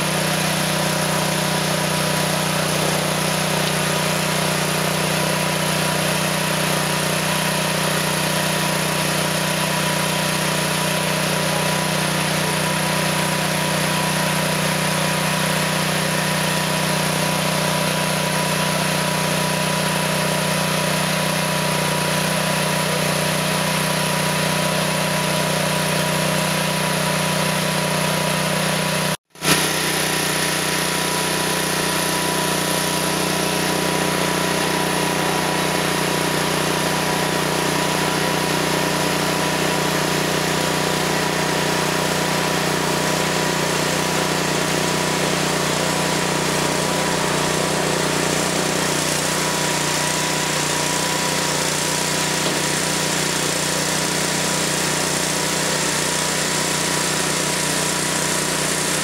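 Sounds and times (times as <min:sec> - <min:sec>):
small gas engine humming: 0:00.0 - 0:59.0.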